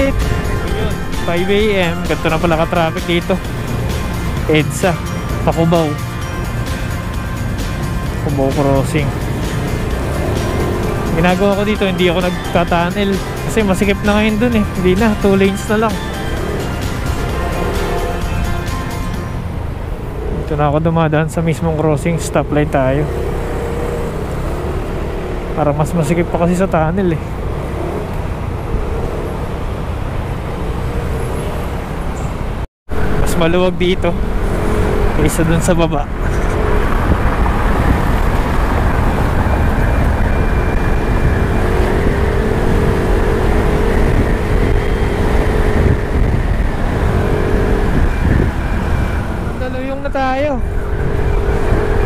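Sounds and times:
scooter engine running: 0.0 - 20.6, 34.2 - 52.0
wind and road noise: 0.0 - 52.0.

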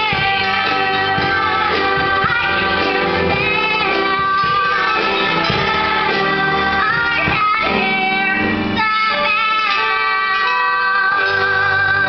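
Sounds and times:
girl singing: 0.0 - 12.0
instrumental backing music: 0.0 - 12.0.

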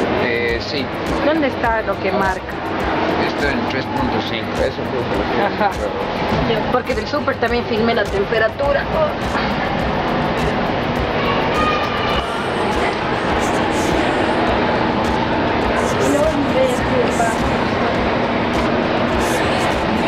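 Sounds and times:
faint music: 0.0 - 20.0
faint voices: 2.0 - 20.0.

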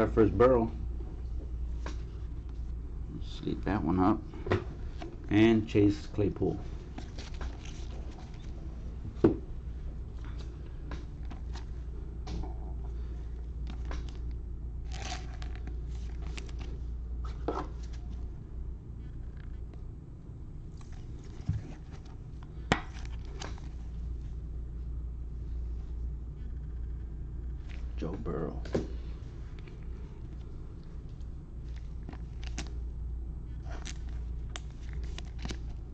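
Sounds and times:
steady low hum: 0.0 - 35.9.

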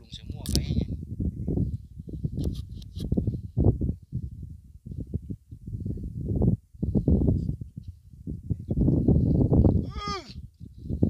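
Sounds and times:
gusty wind on microphone: 0.0 - 11.0
person shouting: 9.8 - 10.4.

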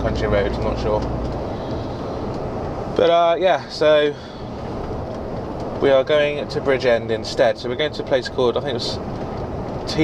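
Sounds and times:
lorry engine and road noise: 0.0 - 10.0.

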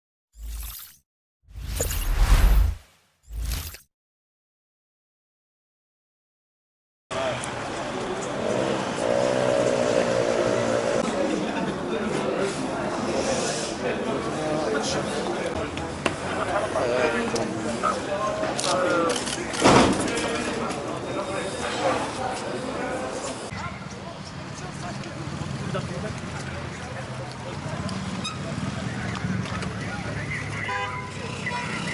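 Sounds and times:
street voices: 7.1 - 31.9.

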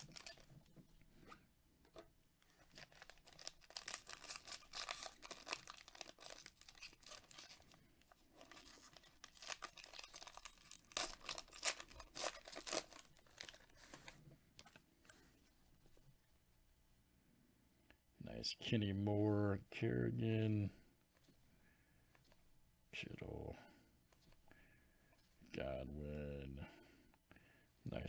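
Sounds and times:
foil wrapper tearing and crinkling: 0.0 - 0.5, 2.6 - 7.8, 8.4 - 14.0.

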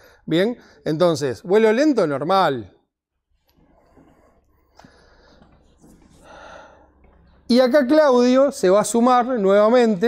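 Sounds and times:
soft breath at microphone: 3.5 - 7.0.

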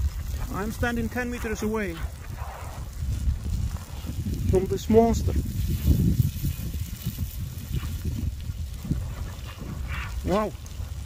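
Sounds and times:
lava crackling and rumbling: 0.0 - 11.0.

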